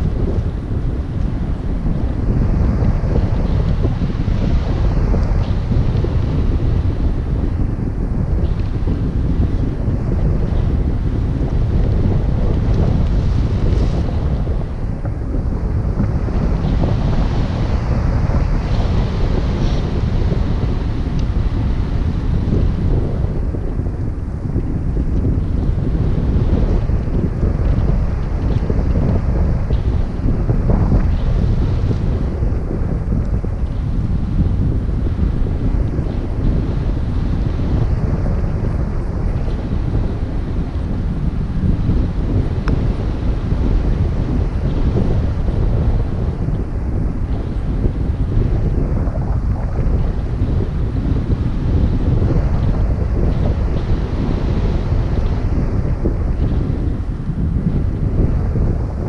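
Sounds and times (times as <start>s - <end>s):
wind rushing over microphone: 0.0s - 59.0s.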